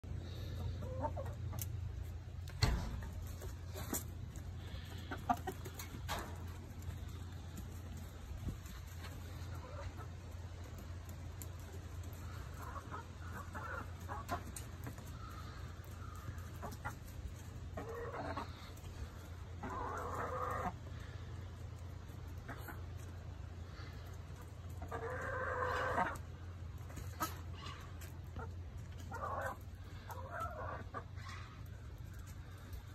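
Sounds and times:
chickens clucking: 0:00.0 - 0:32.9
hens calling: 0:00.1 - 0:32.9.

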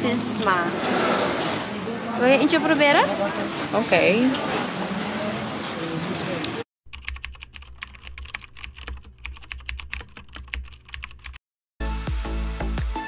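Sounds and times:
music: 0:11.8 - 0:13.0.

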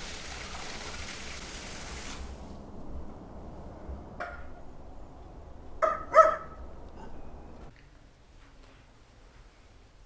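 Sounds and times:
dog barking: 0:05.8 - 0:07.1.

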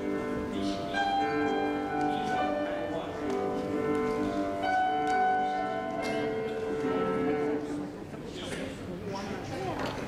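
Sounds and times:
piano chords ringing: 0:00.0 - 0:08.0.

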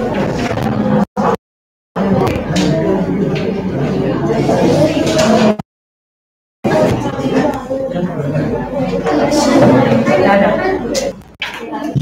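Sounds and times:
voices chattering: 0:02.0 - 0:05.6, 0:06.6 - 0:12.0.

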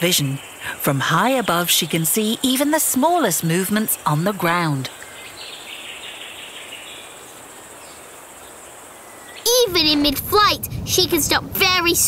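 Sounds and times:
high buzz of insects: 0:00.0 - 0:09.8.

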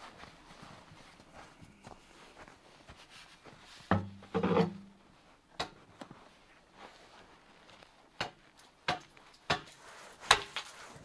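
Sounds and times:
faint scrapes and light knocks: 0:09.6 - 0:11.0.

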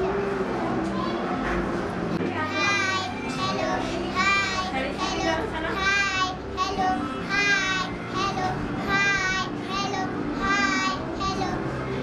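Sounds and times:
children singing together: 0:02.5 - 0:11.8.

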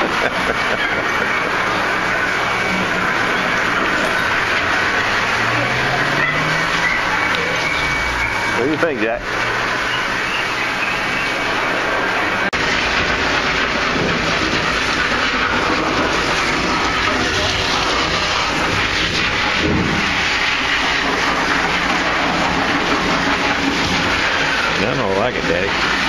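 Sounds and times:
hose water spraying: 0:00.0 - 0:26.0.

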